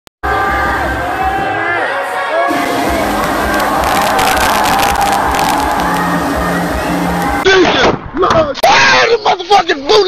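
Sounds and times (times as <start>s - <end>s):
crowd cheering: 0.2s - 7.6s
crackly hiss: 2.5s - 7.4s.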